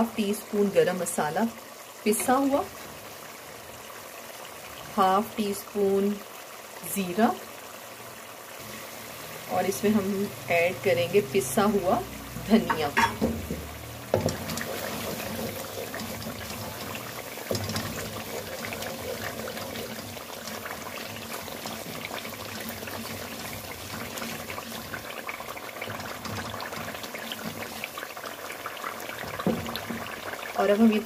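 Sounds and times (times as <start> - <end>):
sauce sizzling in hot oil: 0.0 - 31.0
wooden spoon stirring: 12.5 - 30.5.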